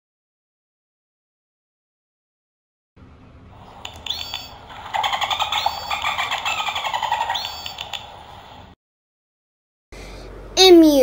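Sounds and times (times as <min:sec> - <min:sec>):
dolphin clicks: 0:03.8 - 0:08.1
dolphin whistles: 0:04.0 - 0:08.0.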